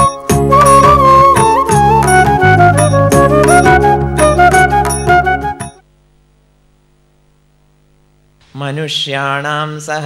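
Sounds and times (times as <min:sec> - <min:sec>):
electrical mains hum: 0:05.8 - 0:09.9
man reciting: 0:08.5 - 0:10.0.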